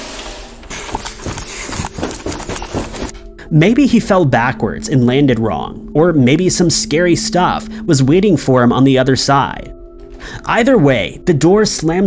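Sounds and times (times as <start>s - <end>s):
knocking and clattering: 0.7s - 3.2s.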